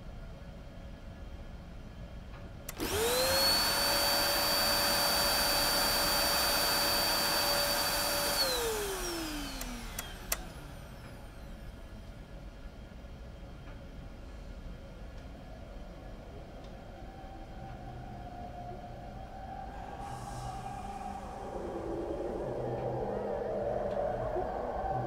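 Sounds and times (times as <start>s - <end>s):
vacuum cleaner switch click: 2.7s - 10.7s
vacuum cleaner motor whine: 2.7s - 12.0s.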